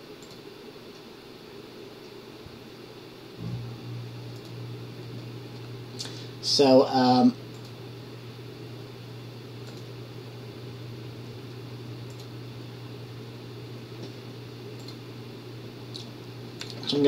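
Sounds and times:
steady low hum: 0.0 - 17.0
faint clicks: 7.5 - 7.8, 9.6 - 9.9, 12.1 - 12.3, 14.8 - 15.0.

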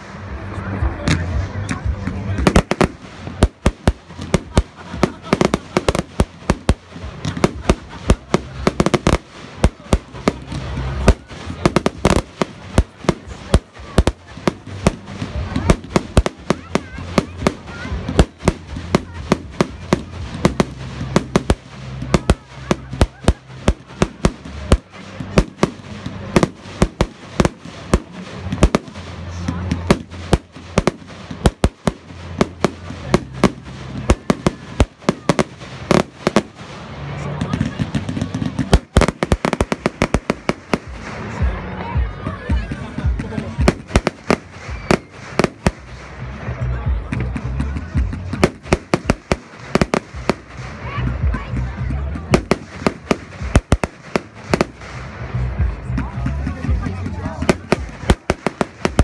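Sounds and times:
fireworks bangs and crackles: 0.0 - 59.0.

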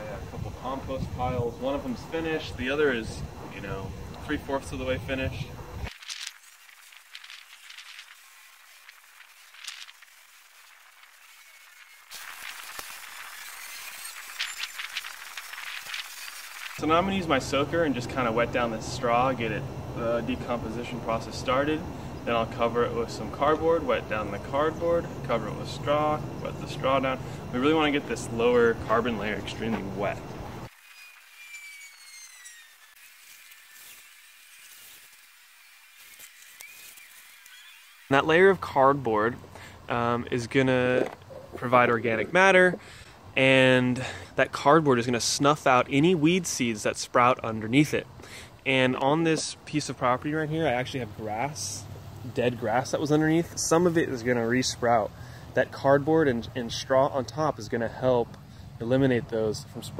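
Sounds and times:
faint outdoor background: 0.0 - 59.9
lawn sprinkler hissing: 0.2 - 40.9
rake dragged through straw: 33.0 - 38.7.

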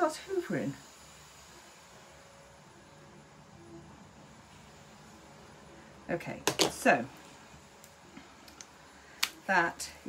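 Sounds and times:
faint steady tone: 0.0 - 6.3.

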